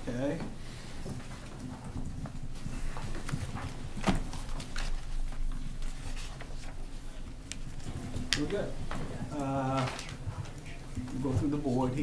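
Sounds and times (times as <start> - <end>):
papers handled on a table: 1.0 - 12.0.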